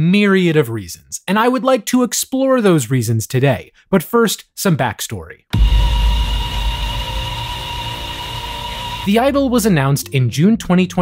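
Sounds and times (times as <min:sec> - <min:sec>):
deep rumbling drone: 0:05.6 - 0:10.2.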